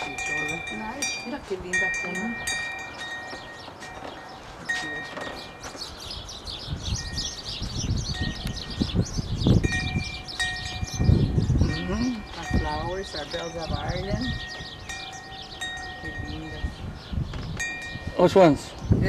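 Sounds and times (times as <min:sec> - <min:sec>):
metal wind chimes ringing: 0:00.0 - 0:06.3, 0:06.9 - 0:09.0, 0:09.6 - 0:18.8
low rumbling thumps: 0:05.3 - 0:18.1.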